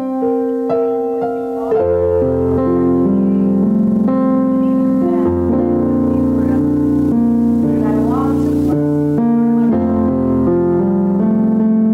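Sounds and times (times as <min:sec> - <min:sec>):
electric keyboard chords: 0:00.0 - 0:11.9.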